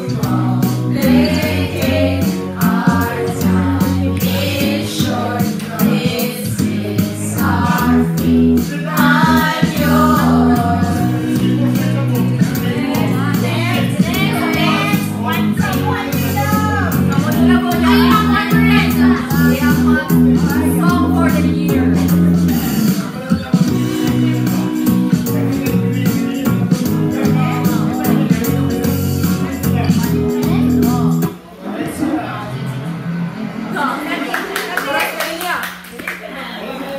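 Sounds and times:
women singing together: 0:00.0 - 0:11.6, 0:12.4 - 0:21.9
music from loudspeaker: 0:00.0 - 0:34.1
group clapping: 0:34.2 - 0:36.4.

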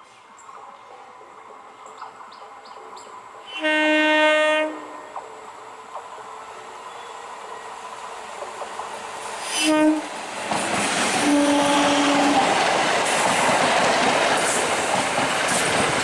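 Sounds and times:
oncoming train noise: 0:00.0 - 0:16.0
train horn blast: 0:03.4 - 0:05.2, 0:09.4 - 0:10.2, 0:11.2 - 0:12.6.

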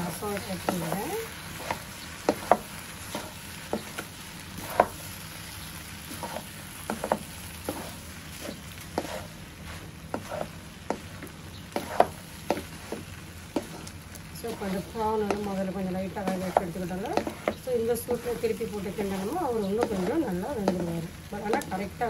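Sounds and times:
noodles sizzling in a wok: 0:00.0 - 0:22.0.

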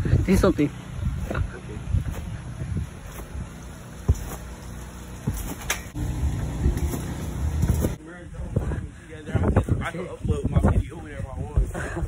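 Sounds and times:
wind rumble on microphone: 0:00.0 - 0:04.4, 0:05.2 - 0:12.0.

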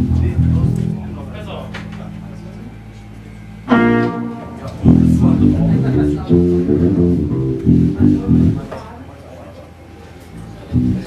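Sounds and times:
electric bass guitar run: 0:00.0 - 0:08.8, 0:10.6 - 0:11.0
amplifier hum: 0:00.0 - 0:09.0
electric guitar note ringing: 0:01.2 - 0:08.7.

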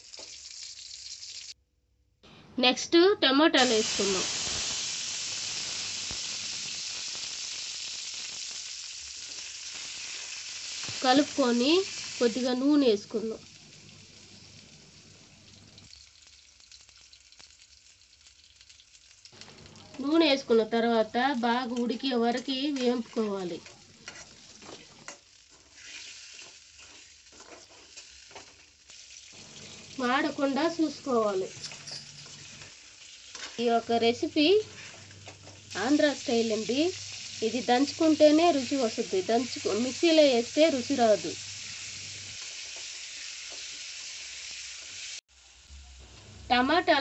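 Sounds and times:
tomatoes sizzling in oil: 0:00.0 - 0:01.6, 0:03.2 - 0:47.0
metal spoon scraping pan: 0:22.8 - 0:28.0, 0:31.5 - 0:33.6.

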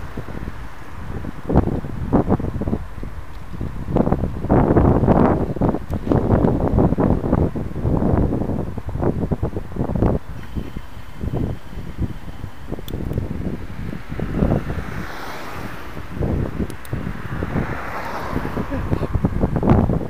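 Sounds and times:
road traffic: 0:00.0 - 0:20.0
wind buffeting microphone: 0:00.0 - 0:20.0.

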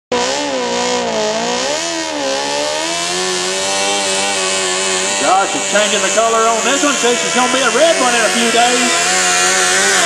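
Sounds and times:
tractor engine at high revs: 0:00.1 - 0:10.0.

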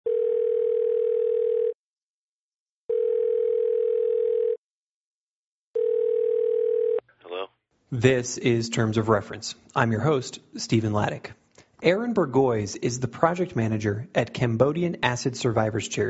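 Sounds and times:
telephone ringing tone: 0:00.1 - 0:01.8, 0:02.9 - 0:04.6, 0:05.8 - 0:07.0
person speaking on phone: 0:07.2 - 0:10.0.

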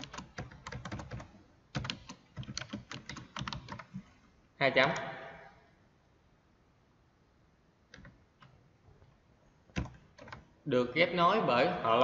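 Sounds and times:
typing on computer keyboard: 0:00.0 - 0:04.1, 0:07.9 - 0:08.5, 0:09.8 - 0:10.5.

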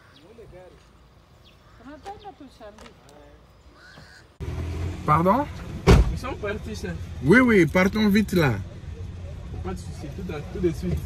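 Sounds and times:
distant voices talking: 0:00.0 - 0:11.0.

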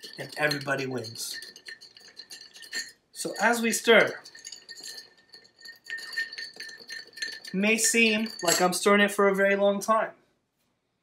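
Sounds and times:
ice clinking against glass: 0:00.0 - 0:08.9.

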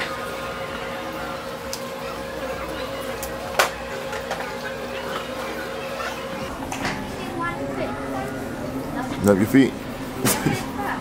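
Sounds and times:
foot spa tub humming: 0:00.0 - 0:11.0.

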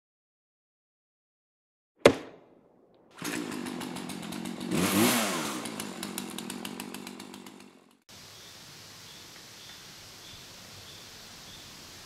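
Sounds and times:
axe striking wooden stump: 0:02.0 - 0:02.4
chainsaw revving: 0:03.1 - 0:08.0.

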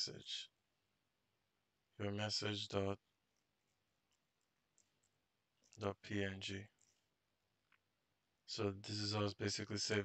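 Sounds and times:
man speaking: 0:00.0 - 0:00.6, 0:02.0 - 0:03.1, 0:05.7 - 0:06.8, 0:08.4 - 0:10.0.

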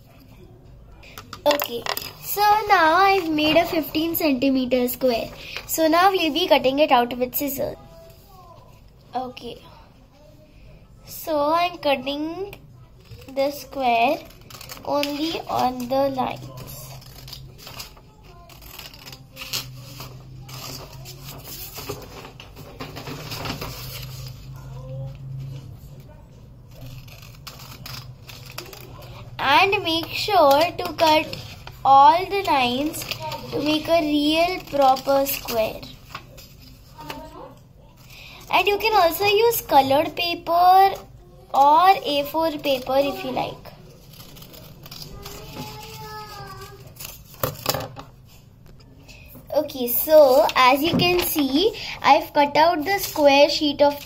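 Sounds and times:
scissors snipping paper: 0:13.0 - 0:21.8, 0:26.7 - 0:31.7, 0:32.4 - 0:35.9, 0:41.6 - 0:47.7
paper rustling: 0:13.0 - 0:26.1, 0:26.7 - 0:41.0, 0:41.6 - 0:48.4, 0:49.2 - 0:51.8.

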